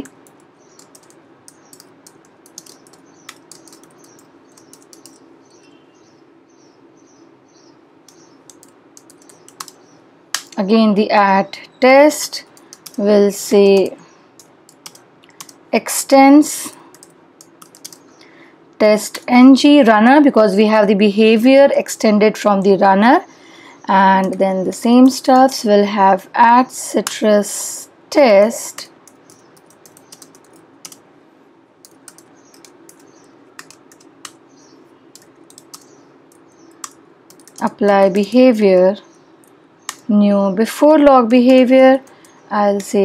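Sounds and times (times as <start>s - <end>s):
light keyboard keystrokes: 0.0s - 5.2s, 8.1s - 9.8s, 12.5s - 13.0s, 14.4s - 15.6s, 16.7s - 18.0s, 28.7s - 31.0s, 31.8s - 34.4s, 35.1s - 38.0s
faint background hum: 0.0s - 43.0s.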